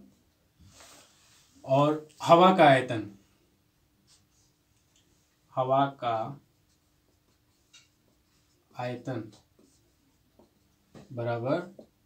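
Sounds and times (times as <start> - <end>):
marker writing on whiteboard: 6.5 - 11.1.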